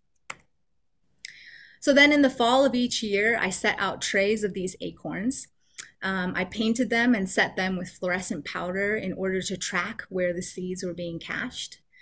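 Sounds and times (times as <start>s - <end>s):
short breath: 1.2s - 1.8s
woman speaking: 1.8s - 11.9s.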